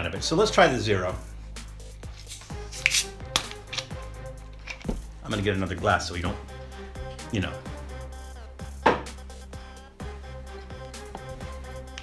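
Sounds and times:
gas hissing from bottle: 0:01.8 - 0:04.0
bottle cap clicking: 0:02.2 - 0:05.1.

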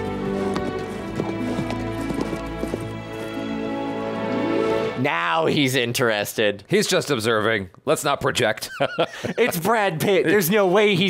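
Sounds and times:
horse hooves clip-clopping: 0:00.0 - 0:04.0
orchestral film score: 0:00.0 - 0:05.6.

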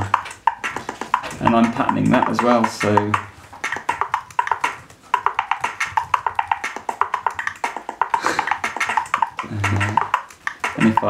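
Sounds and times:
fast drum machine pattern: 0:00.0 - 0:11.0.

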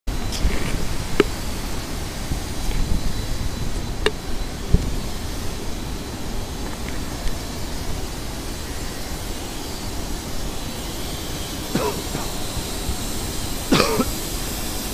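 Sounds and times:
wind buffeting microphone: 0:00.1 - 0:14.9.

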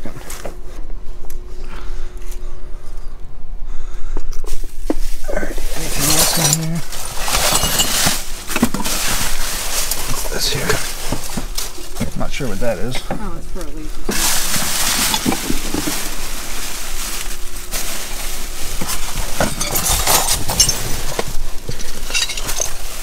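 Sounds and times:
styrofoam plastic and cardboard rustling: 0:04.5 - 0:23.0.

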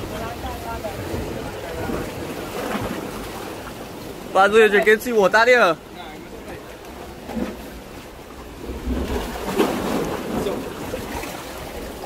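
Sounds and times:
surf washing against rocks: 0:00.0 - 0:12.0.

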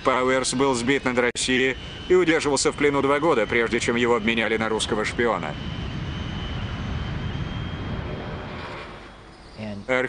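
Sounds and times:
jet engine climbing overhead: 0:00.0 - 0:10.0.

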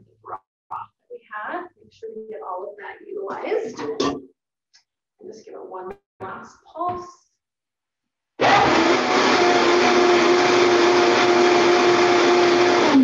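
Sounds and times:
blender motor whine: 0:08.4 - 0:13.0.

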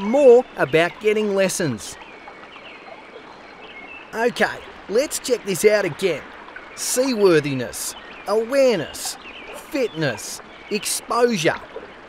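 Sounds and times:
gently lapping water: 0:00.0 - 0:12.0.

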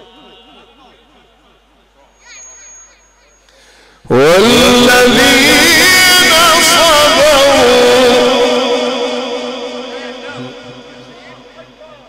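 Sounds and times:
man reciting through a microphone: 0:00.0 - 0:01.5, 0:04.0 - 0:12.0.

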